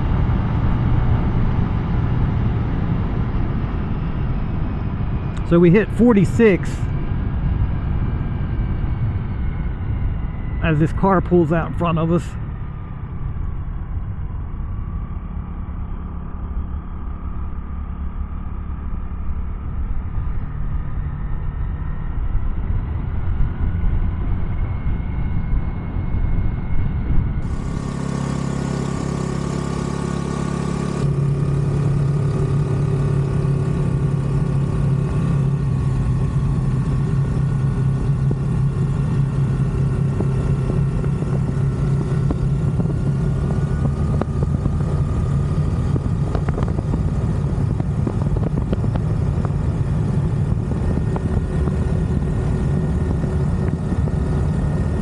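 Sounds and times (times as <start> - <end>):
wind and road noise: 0.0 - 55.0
scooter engine cruising: 27.4 - 55.0.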